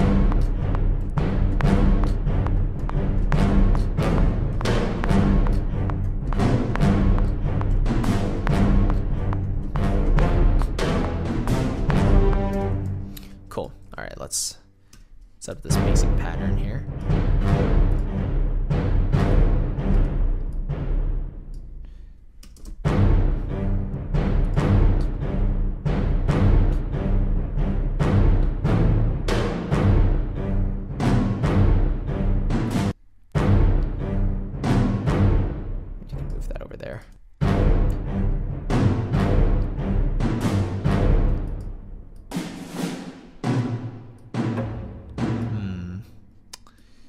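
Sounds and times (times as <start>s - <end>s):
orchestral drum hits: 42.3s - 45.5s.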